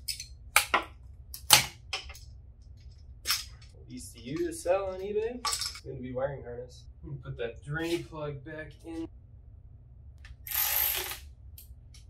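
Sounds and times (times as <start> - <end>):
ratchet wrench clicking: 10.4 - 11.2.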